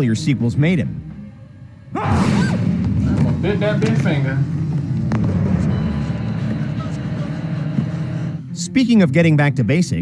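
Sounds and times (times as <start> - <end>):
low rumbling drone: 0.0 - 9.0.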